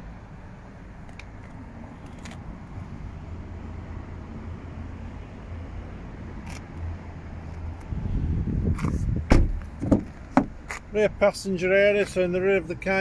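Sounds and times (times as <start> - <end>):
microphone handling noise: 7.8 - 10.8.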